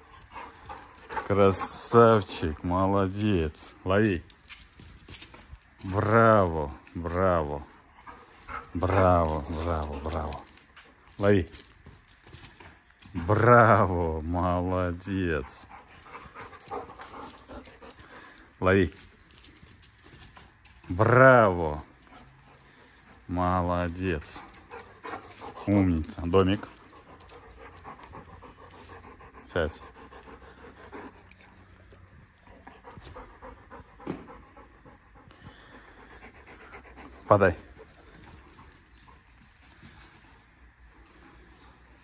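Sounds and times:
dog panting: 0.0s - 14.0s, 14.6s - 42.0s.

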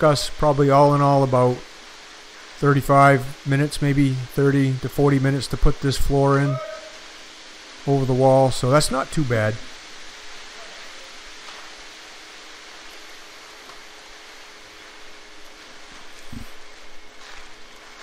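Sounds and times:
engines running with hiss: 0.0s - 18.0s.

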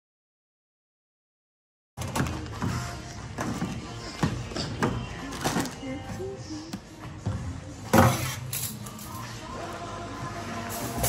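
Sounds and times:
music playing: 2.0s - 11.0s.

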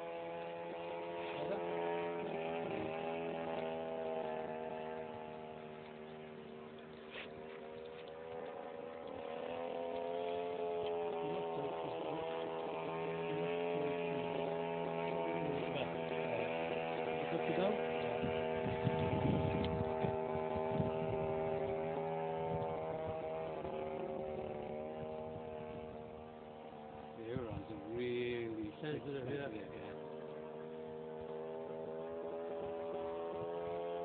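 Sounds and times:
model plane engine running: 0.0s - 34.0s.

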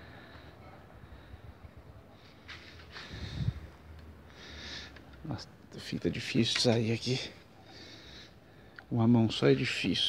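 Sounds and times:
man breathing out through nose: 2.9s - 3.7s, 4.3s - 5.0s.

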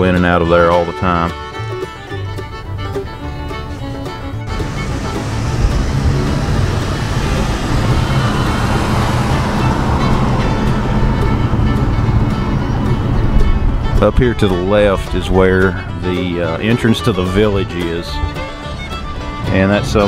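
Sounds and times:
faint bluegrass music: 0.0s - 20.0s
road noise inside moving car: 1.5s - 20.0s.

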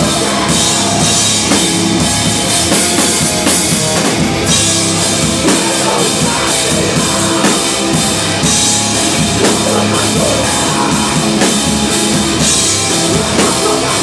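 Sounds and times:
band playing live: 0.0s - 14.0s.

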